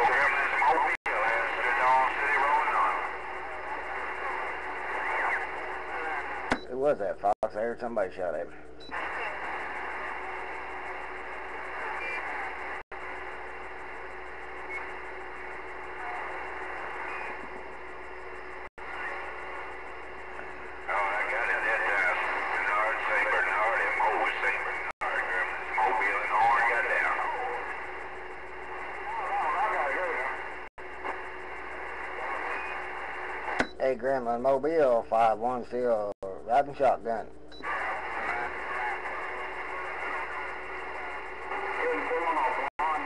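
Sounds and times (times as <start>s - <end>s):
garbled radio voices: 0.0s - 43.0s
radio static hiss: 0.0s - 43.0s.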